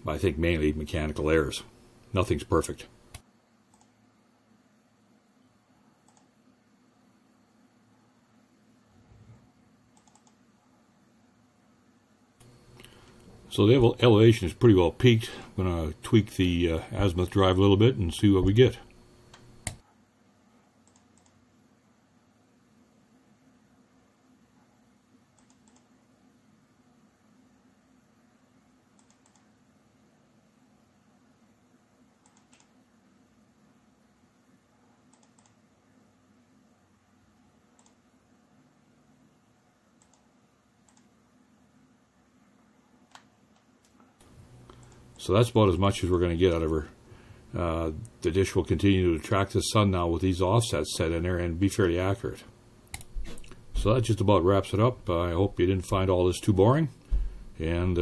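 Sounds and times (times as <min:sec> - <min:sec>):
low steady hum: 0:00.0 - 0:58.0
faint computer mouse clicks: 0:03.1 - 0:04.0, 0:06.0 - 0:06.3, 0:10.0 - 0:10.4, 0:20.8 - 0:21.4, 0:25.4 - 0:25.9, 0:29.0 - 0:29.5, 0:32.2 - 0:32.8, 0:35.1 - 0:35.6, 0:37.8 - 0:38.0, 0:40.0 - 0:41.1, 0:43.1 - 0:45.1.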